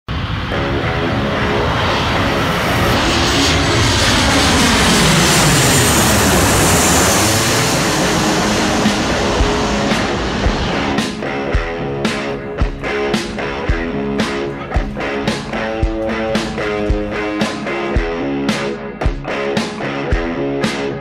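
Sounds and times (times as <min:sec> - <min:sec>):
jet airliner roar passing overhead: 0:00.1 - 0:18.7.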